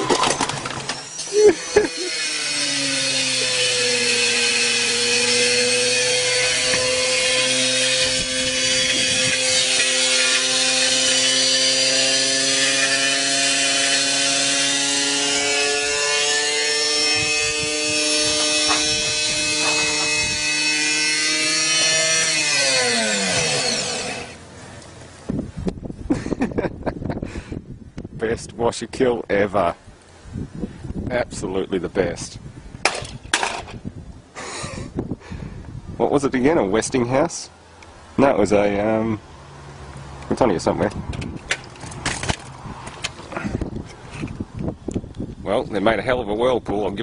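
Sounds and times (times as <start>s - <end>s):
electric motor whining: 0.0s - 24.6s.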